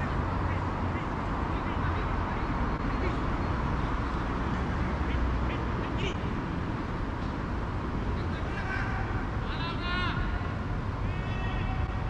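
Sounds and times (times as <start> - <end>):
players shouting: 8.2 - 12.0.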